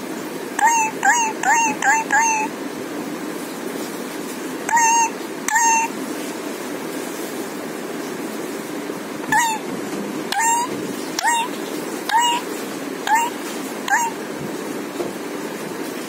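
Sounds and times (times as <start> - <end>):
parakeet calls: 0.6 - 2.5, 4.7 - 5.9, 9.2 - 9.7, 10.3 - 14.2.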